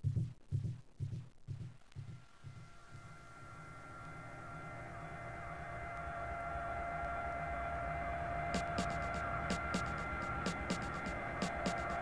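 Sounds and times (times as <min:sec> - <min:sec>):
low rumble: 0:02.0 - 0:12.0
sustained synth tones: 0:02.0 - 0:12.0.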